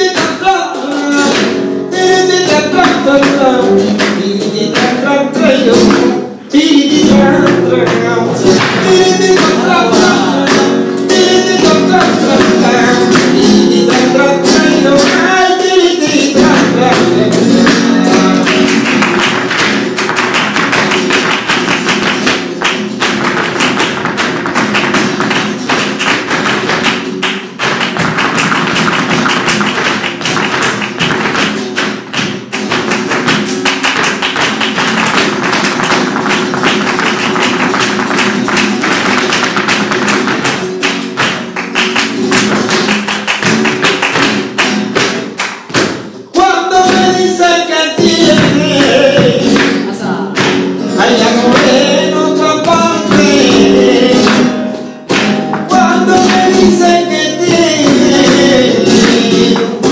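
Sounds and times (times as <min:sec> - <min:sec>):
hand clapping: 0:00.0 - 0:06.2, 0:07.4 - 0:15.4, 0:16.1 - 0:49.8, 0:50.4 - 0:59.9
flamenco guitar playing: 0:00.0 - 0:59.9
heel footwork on stage floor: 0:00.0 - 0:59.9.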